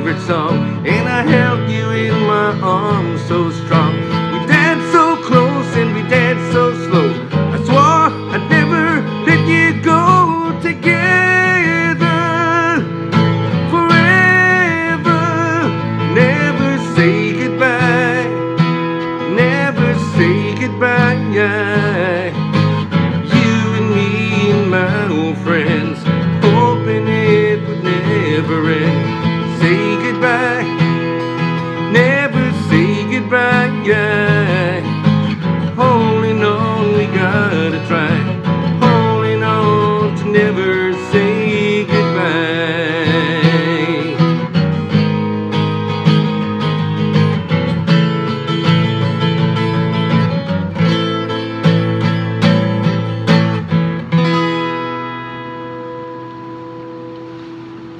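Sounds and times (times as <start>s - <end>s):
man singing wordless lines: 0.0s - 45.4s
guitar rock ballad music: 0.0s - 57.9s.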